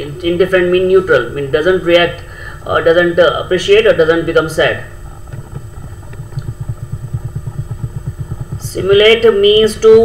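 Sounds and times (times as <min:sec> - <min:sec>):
low pulsing engine rumble: 0:04.9 - 0:10.0.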